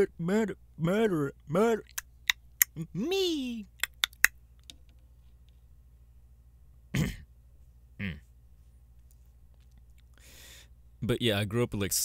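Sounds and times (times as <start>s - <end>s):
faint low hum: 0.0s - 12.0s
man clearing his throat: 6.9s - 7.3s, 8.0s - 8.3s.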